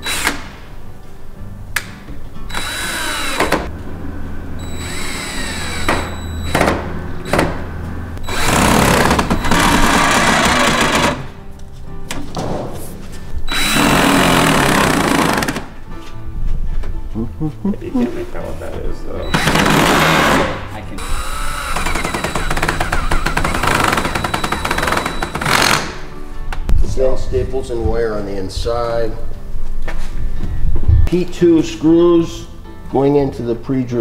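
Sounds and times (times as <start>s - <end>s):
drill driving screws into wood: 2.5s - 3.7s, 4.7s - 7.5s, 8.2s - 11.3s, 13.5s - 15.7s, 19.4s - 26.0s.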